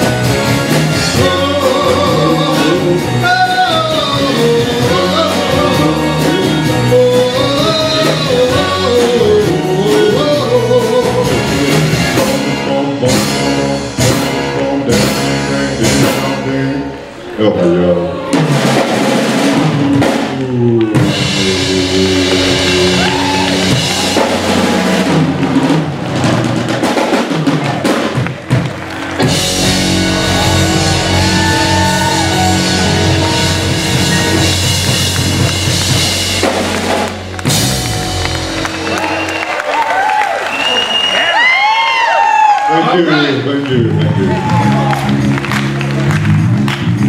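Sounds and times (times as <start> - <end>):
rock and roll band playing: 0.0 - 47.0.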